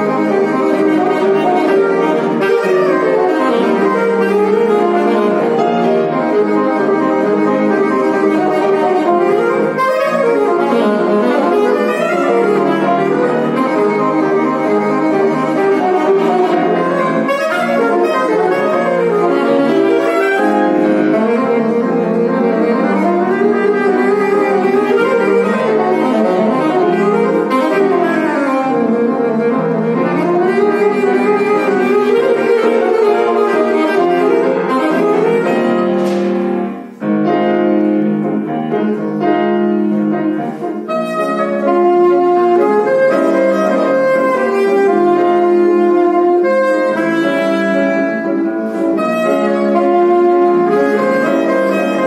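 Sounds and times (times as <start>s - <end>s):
alto saxophone: 0.0s - 52.0s
grand piano accompaniment: 0.0s - 52.0s.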